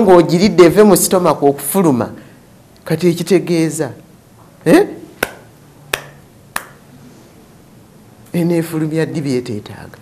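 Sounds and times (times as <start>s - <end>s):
finger snaps: 5.2s - 6.8s.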